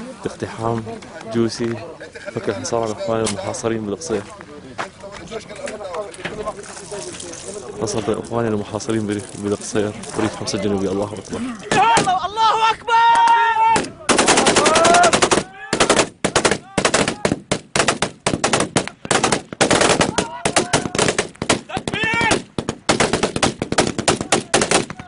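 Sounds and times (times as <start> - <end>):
man shouting: 11.5 - 17.3, 20.1 - 21.1, 21.7 - 22.4
automatic gunfire bursts: 14.1 - 21.7, 22.3 - 24.9.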